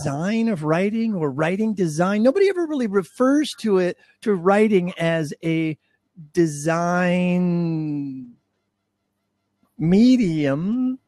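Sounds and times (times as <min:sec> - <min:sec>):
man talking: 0:00.0 - 0:08.4, 0:09.8 - 0:11.0.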